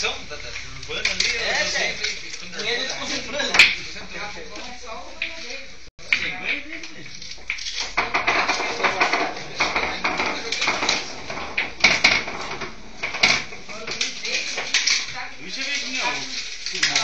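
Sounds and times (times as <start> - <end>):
hard objects clinking: 0.0 - 3.8, 6.1 - 17.0
people talking: 0.0 - 7.2, 8.5 - 11.2, 13.7 - 17.0
sharp knocks: 7.9 - 13.7.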